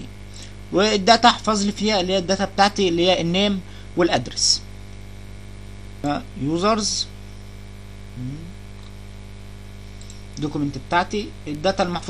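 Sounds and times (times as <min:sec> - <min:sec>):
electrical mains hum: 0:00.0 - 0:12.0
murmured voice: 0:08.2 - 0:08.6.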